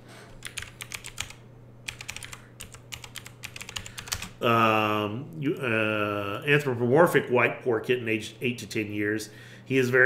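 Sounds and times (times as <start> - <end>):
computer keyboard typing: 0.4 - 4.4.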